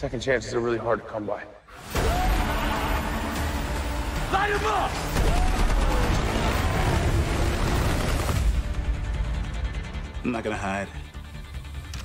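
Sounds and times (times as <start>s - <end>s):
loud trailer music: 1.7s - 12.0s
rapid gunfire: 5.0s - 8.7s.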